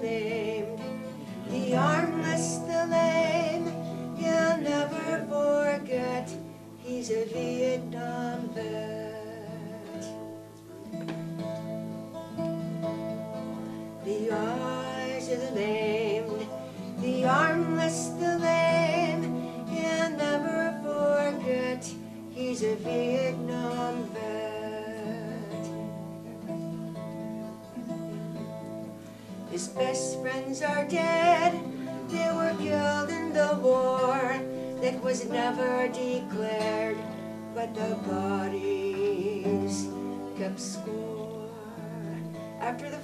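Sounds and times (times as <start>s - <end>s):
woman singing: 0.0s - 10.4s, 13.5s - 26.5s, 29.4s - 43.0s
twelve-string acoustic guitar: 0.0s - 43.0s.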